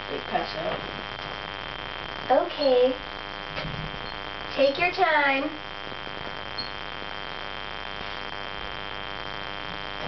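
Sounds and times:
faint high-pitched whine: 0.0s - 10.0s
room hiss and low hum: 0.0s - 10.0s.

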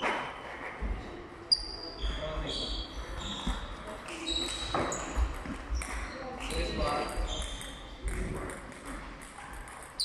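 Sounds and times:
sneakers squeaking on floor: 1.5s - 8.2s
ping pong ball clicking: 5.4s - 10.0s.

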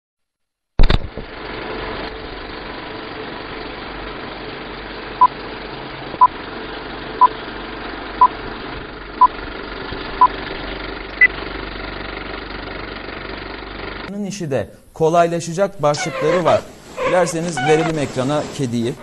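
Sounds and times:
film projector whirring: 1.2s - 14.1s, 16.7s - 19.0s.

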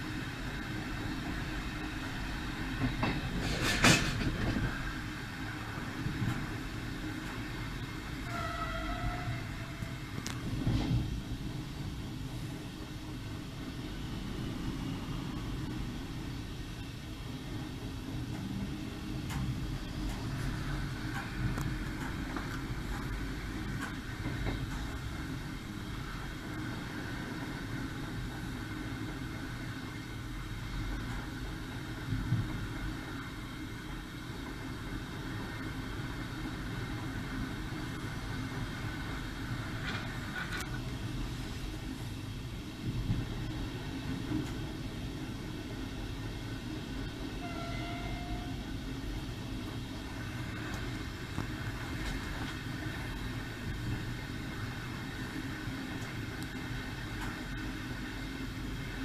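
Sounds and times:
train wheels rumbling: 0.0s - 59.0s
train knocks: 0.6s - 5.0s, 5.6s - 13.2s, 17.6s - 29.8s, 30.9s - 41.0s, 42.8s - 45.8s, 46.9s - 57.8s.

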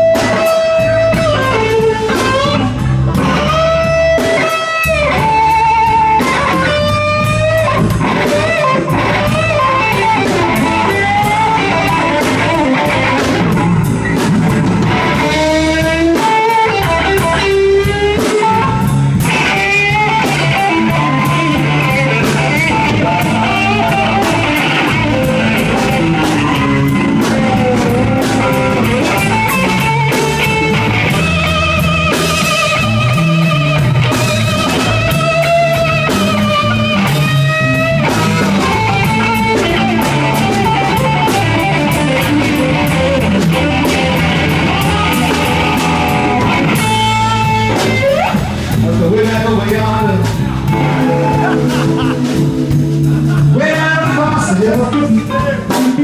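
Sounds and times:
electric blues band playing: 0.0s - 56.0s
electric guitar solo: 0.0s - 56.0s.

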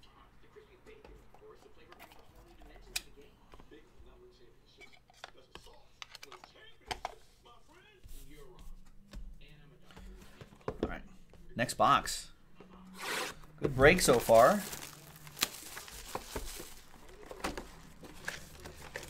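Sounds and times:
cards rustling: 13.0s - 19.0s.

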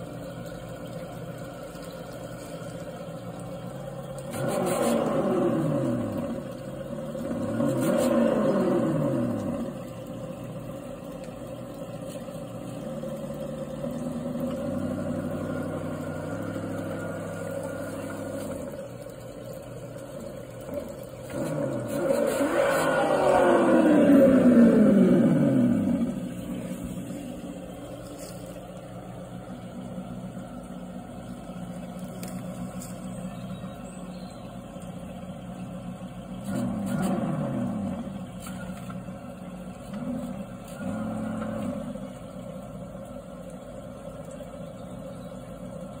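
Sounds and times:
engine sound idling: 0.0s - 46.0s.

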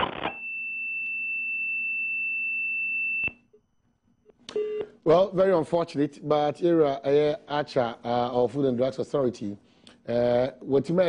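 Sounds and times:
high-pitched telephone tone: 0.0s - 3.5s.

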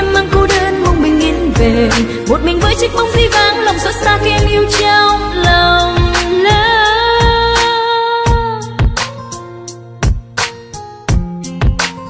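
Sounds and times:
pop ballad singing: 0.0s - 9.5s
drum beat: 10.0s - 12.0s.

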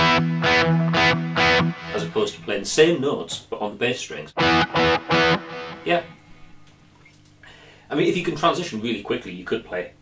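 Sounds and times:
distorted electric guitar chord: 0.0s - 2.3s, 4.4s - 6.1s.

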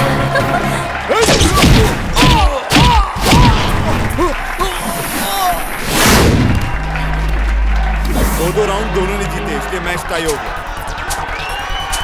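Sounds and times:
low musical drone: 4.3s - 12.0s.

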